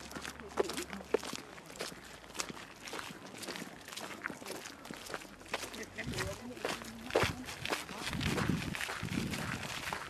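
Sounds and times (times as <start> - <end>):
footsteps on rough ground: 0.0 - 10.0.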